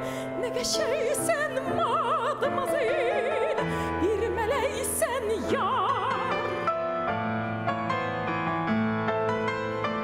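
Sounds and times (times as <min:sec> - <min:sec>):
piano playing: 0:00.0 - 0:10.0.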